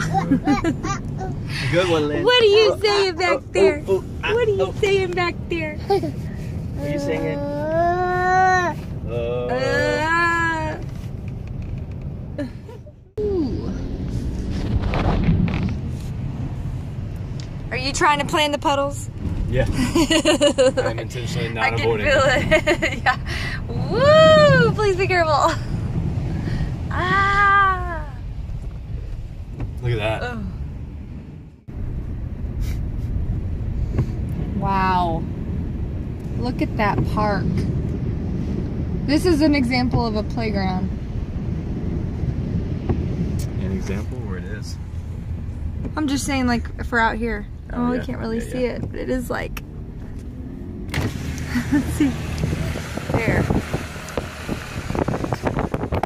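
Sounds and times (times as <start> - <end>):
car driving through floodwater: 0.0 - 56.0
person exclaiming: 9.5 - 10.4
wind buffeting microphone: 10.2 - 20.8, 22.1 - 56.0.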